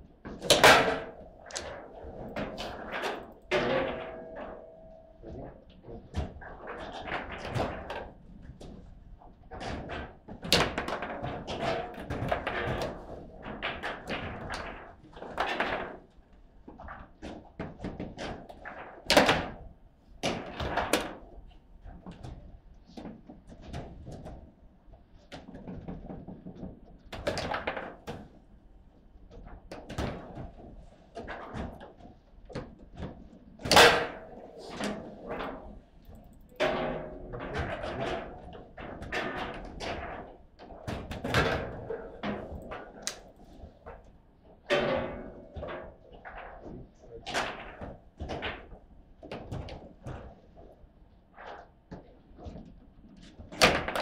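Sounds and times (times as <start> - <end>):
foosball knocks and clacks: 0.2 - 19.6, 29.3 - 50.8, 51.4 - 54.0.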